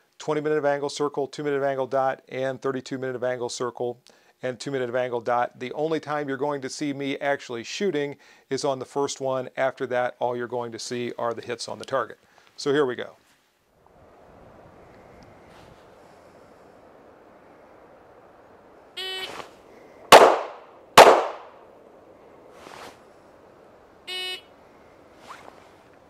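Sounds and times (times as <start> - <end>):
outdoor background hiss: 0.0 - 26.0
handgun shots: 20.1 - 21.6.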